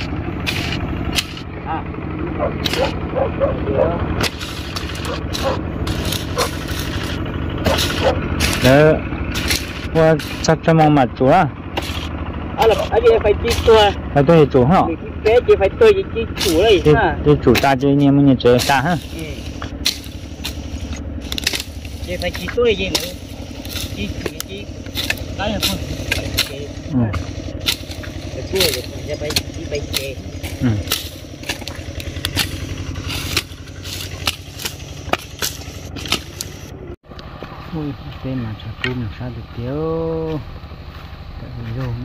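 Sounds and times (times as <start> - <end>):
machete chopping brush: 0.0 - 1.5, 2.5 - 3.1, 4.1 - 10.9, 11.7 - 14.0, 16.3 - 36.7
small engine running: 0.0 - 42.0
steady low rumble: 0.0 - 42.0
person talking: 12.6 - 19.5, 25.4 - 27.3, 28.3 - 30.9.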